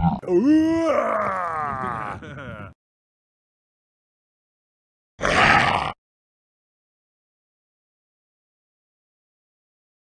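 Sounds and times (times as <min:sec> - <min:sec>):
growl-like roar: 0:00.0 - 0:02.6, 0:05.2 - 0:06.0.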